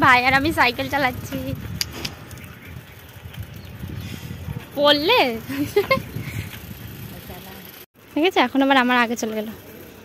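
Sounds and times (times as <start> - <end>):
wind buffeting microphone: 0.0 - 7.8.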